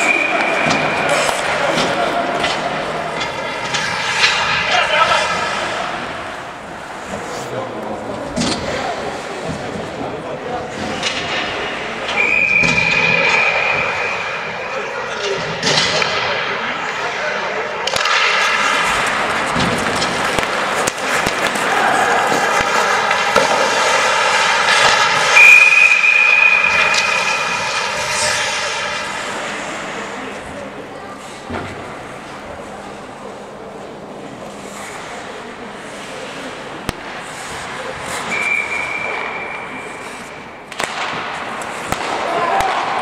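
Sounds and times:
hockey sticks and puck clicking: 0.0 - 6.4, 17.8 - 29.9, 34.4 - 43.0.

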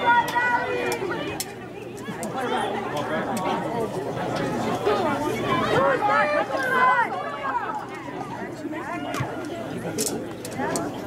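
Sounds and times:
babble of voices: 0.0 - 11.0.

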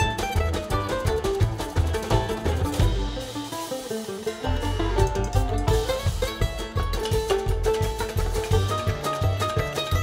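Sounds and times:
banjo picking: 0.0 - 10.0
drums and hand percussion: 0.0 - 10.0
mandolin picking: 0.0 - 10.0
upright bass: 0.0 - 10.0.

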